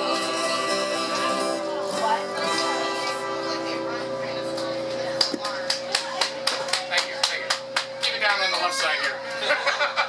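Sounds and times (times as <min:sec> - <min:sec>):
small audience clapping: 0:05.2 - 0:09.2.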